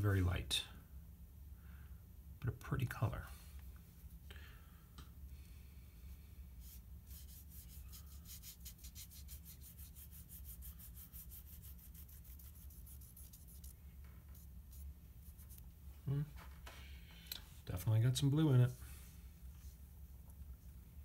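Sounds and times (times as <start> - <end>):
swab scratching on paper: 6.6 - 15.7.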